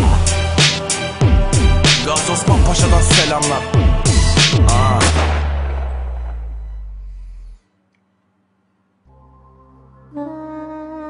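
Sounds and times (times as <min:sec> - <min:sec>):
person rapping: 0:00.0 - 0:00.4, 0:01.8 - 0:05.2
hip hop beat with sliding bass: 0:00.0 - 0:07.0.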